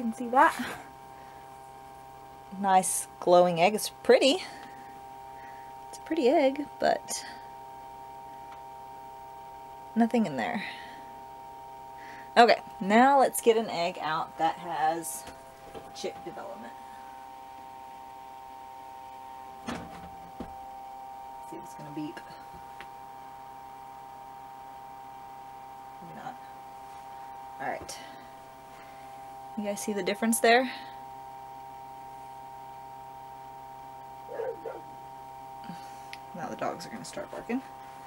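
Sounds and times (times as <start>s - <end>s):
incubator fan whining: 0.0s - 38.0s
steady electrical hum: 0.0s - 38.0s
dog barking: 34.3s - 34.9s.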